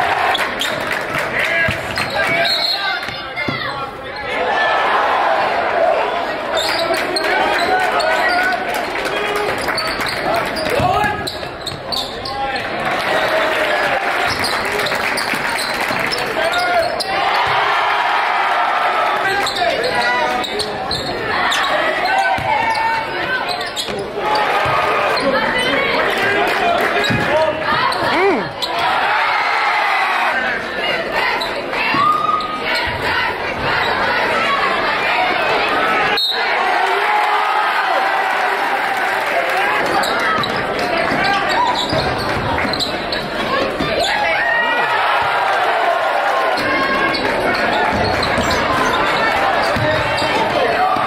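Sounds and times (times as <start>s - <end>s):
crowd voices and shouts: 0.0s - 51.0s
basketball bouncing on court: 22.3s - 24.0s, 27.0s - 28.1s, 40.0s - 42.9s, 46.6s - 51.0s.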